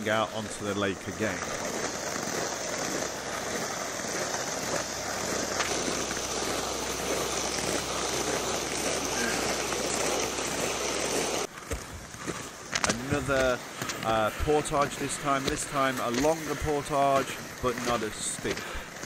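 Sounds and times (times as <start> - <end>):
toboggans sliding over snow: 0.0 - 19.0.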